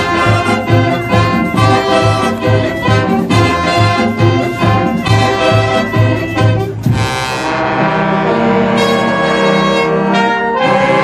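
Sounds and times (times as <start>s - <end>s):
brass band playing: 0.0s - 11.0s.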